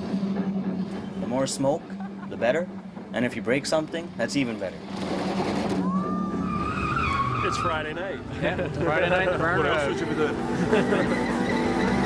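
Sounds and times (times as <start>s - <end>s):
tyres rushing: 4.4s - 12.0s
tyre squeal: 5.6s - 8.2s, 10.8s - 12.0s.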